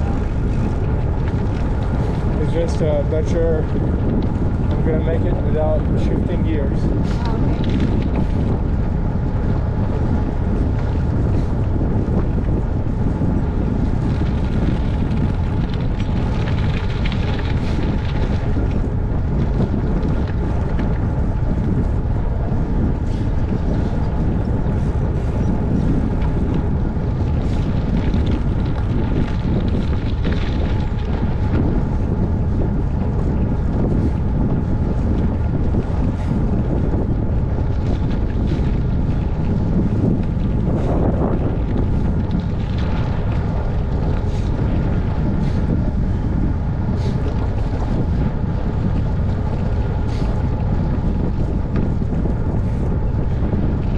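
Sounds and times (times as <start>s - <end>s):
bicycle tyres rolling: 0.0s - 53.9s
wind buffeting microphone: 0.0s - 53.9s.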